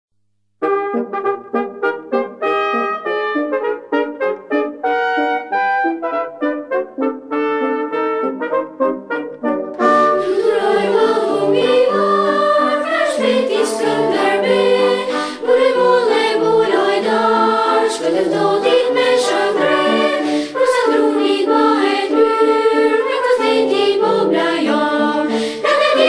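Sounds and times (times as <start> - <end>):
children's choir singing: 9.8 - 26.0.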